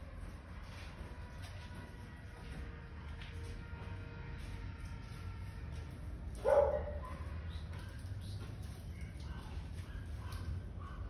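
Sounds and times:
dog bark: 6.4s - 7.3s.

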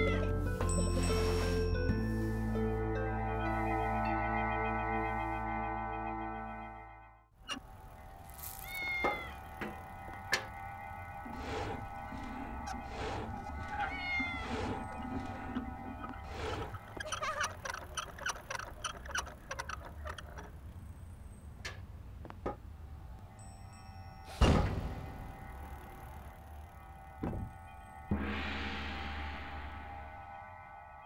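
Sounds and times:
background music with held tones: 0.0s - 7.3s
cat meowing: 8.6s - 9.4s, 13.6s - 14.9s.

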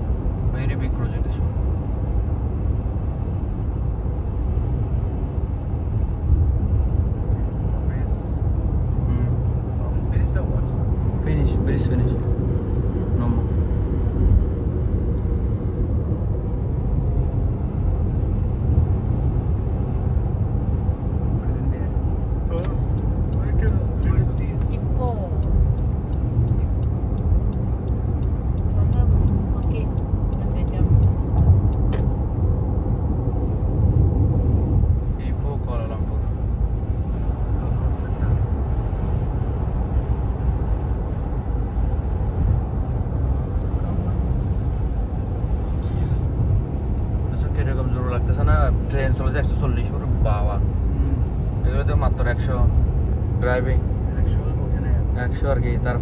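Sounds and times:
car interior road rumble: 0.0s - 56.0s.

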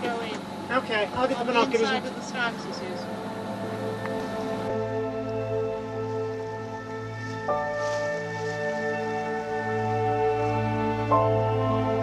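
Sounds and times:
slow sustained chords: 0.0s - 12.0s.

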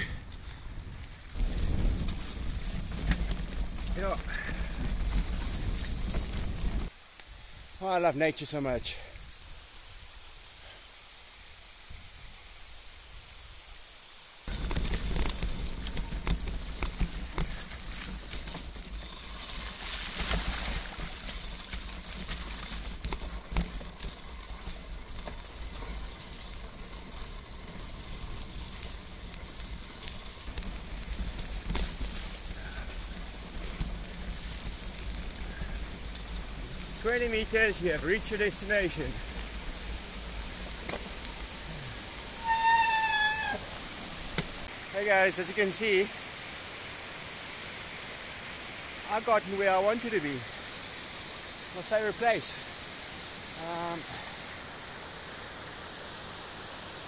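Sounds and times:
bike rolling over rocky trail: 0.0s - 6.9s, 14.5s - 46.0s
wind noise on microphone: 0.0s - 7.8s
rain hissing: 0.0s - 57.0s.

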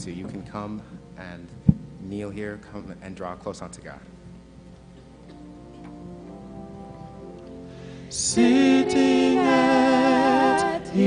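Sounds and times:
soft keyboard chords: 0.0s - 11.0s.

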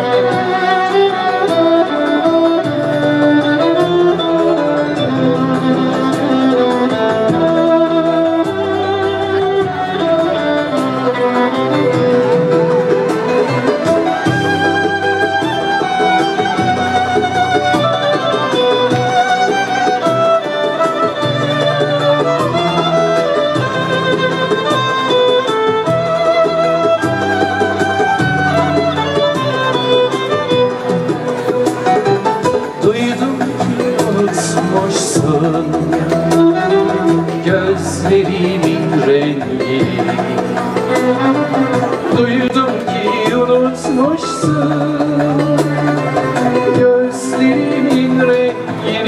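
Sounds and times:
amplified violin melody: 0.0s - 49.0s
steady light beat: 0.0s - 49.0s.

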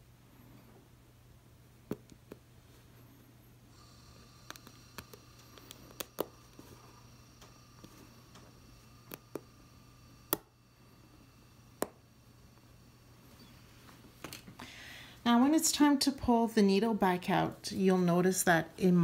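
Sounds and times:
faint low hum: 0.0s - 19.0s
thimble clicking on needle: 3.8s - 10.6s, 11.3s - 12.7s.

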